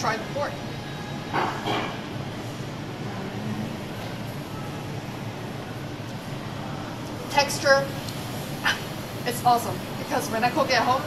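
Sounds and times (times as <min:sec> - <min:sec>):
shopping mall murmur: 0:00.0 - 0:11.0.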